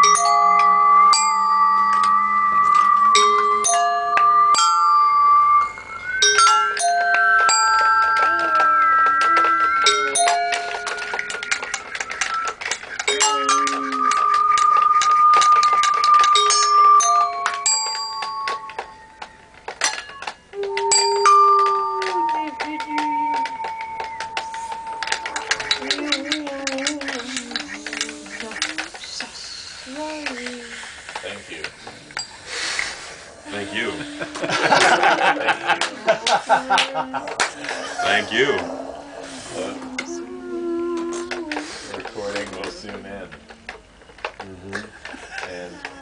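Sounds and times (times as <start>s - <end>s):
bell-like sung tones: 0.0s - 29.2s, 33.4s - 41.6s
dense patter of clicks: 7.5s - 20.6s
low voices sliding: 35.5s - 46.0s.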